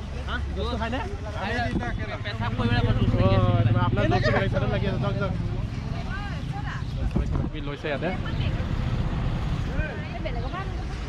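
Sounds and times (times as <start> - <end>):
loud men's voices: 0.4 - 5.7.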